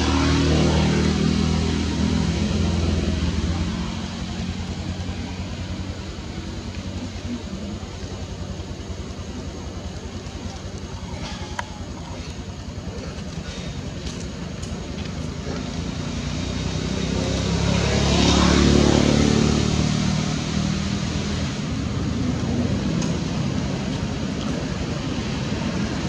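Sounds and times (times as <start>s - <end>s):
vehicle passing by: 0.0s - 10.6s, 12.0s - 26.0s.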